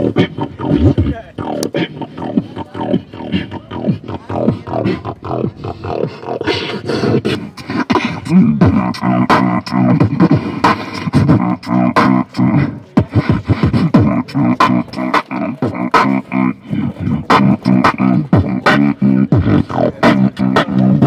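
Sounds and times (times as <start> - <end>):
person beatboxing: 0.0 - 21.0.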